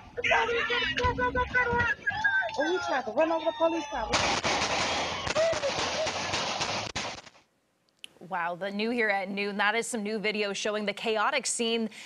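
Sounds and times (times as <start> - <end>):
people shouting: 0.0 - 6.5
rapid gunshots: 4.1 - 7.5.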